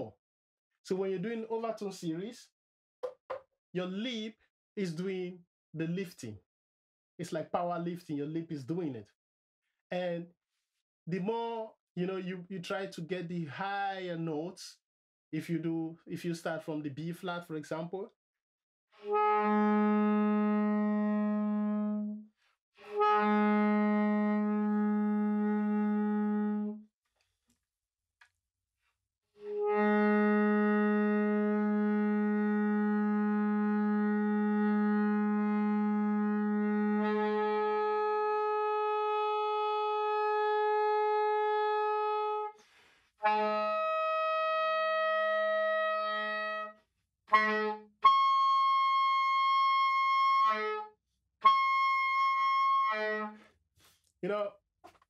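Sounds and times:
soprano saxophone held notes: 0:19.1 - 0:22.2, 0:22.9 - 0:26.8, 0:29.4 - 0:42.5, 0:43.2 - 0:46.7, 0:47.3 - 0:53.4.

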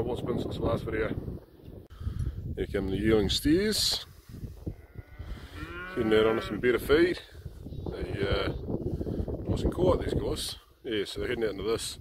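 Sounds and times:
steer mooing: 0:04.7 - 0:06.8.

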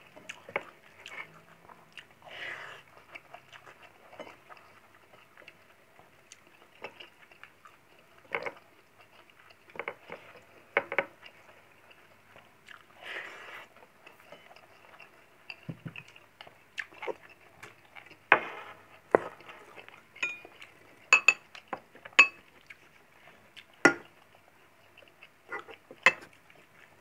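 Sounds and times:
person chewing: 0:00.2 - 0:15.3, 0:16.0 - 0:27.0
metal spoon clinking on glass bowl: 0:20.2 - 0:21.5, 0:22.2 - 0:22.4.

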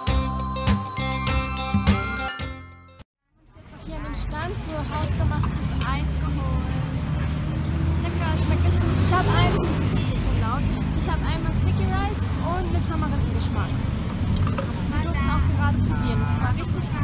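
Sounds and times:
low rumble of traffic: 0:03.2 - 0:17.0
people talking: 0:03.4 - 0:13.9, 0:14.8 - 0:17.0
vehicle passing: 0:03.5 - 0:17.0.

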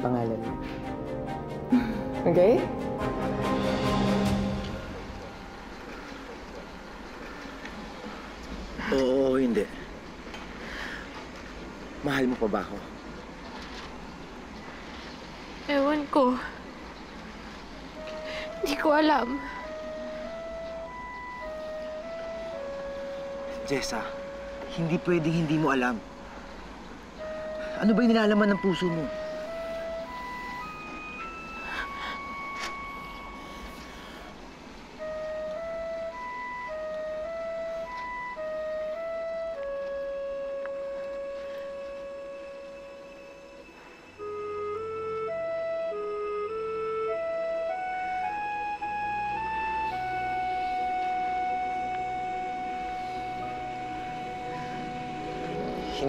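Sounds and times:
soft dramatic background score: 0:00.0 - 0:56.0
long held flute-like note: 0:03.2 - 0:06.2, 0:18.0 - 0:26.6, 0:27.2 - 0:56.0.

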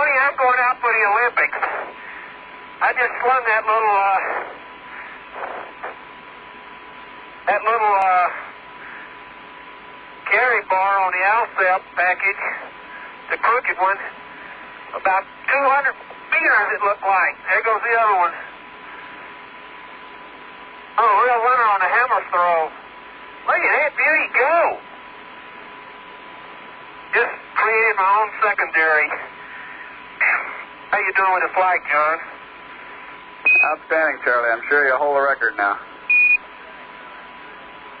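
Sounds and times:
radio link hiss: 0:00.0 - 0:38.0
short high beep: 0:33.5 - 0:33.7.

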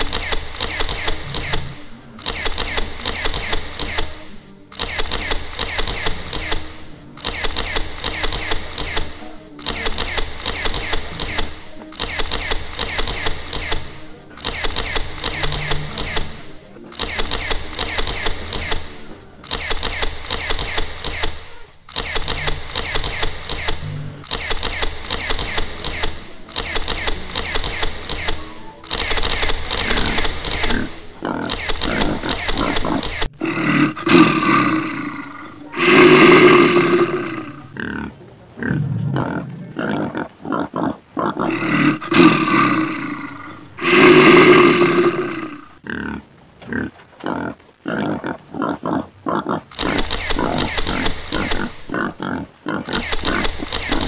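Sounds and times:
rapid mechanical clicking: 0:00.0 - 0:33.4, 0:49.7 - 0:52.0, 0:52.8 - 0:54.0
loud animal roars: 0:29.7 - 0:54.0.

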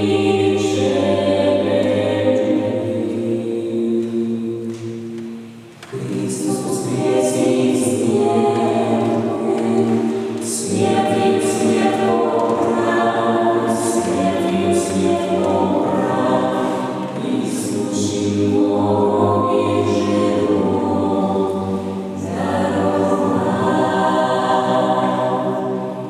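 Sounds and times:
a cappella group singing harmony: 0:00.0 - 0:26.0.

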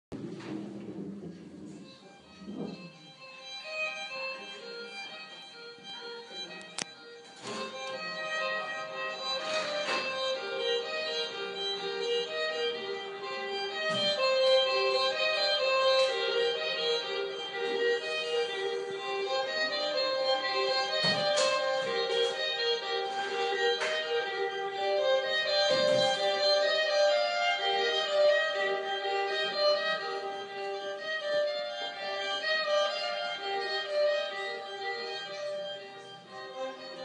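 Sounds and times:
slow violin music on television: 0:00.2 - 0:37.0.

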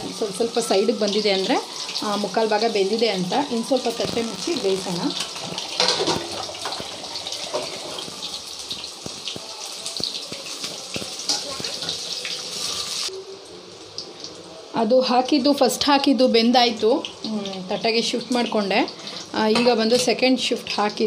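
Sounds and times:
meat deep-frying in hot oil: 0:00.0 - 0:21.0.

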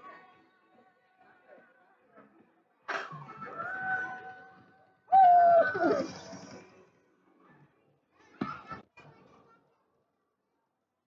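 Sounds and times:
high voice sliding oooh: 0:05.1 - 0:06.3.

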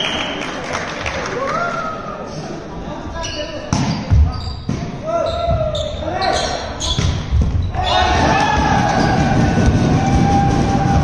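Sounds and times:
players shouting: 0:07.7 - 0:11.0.

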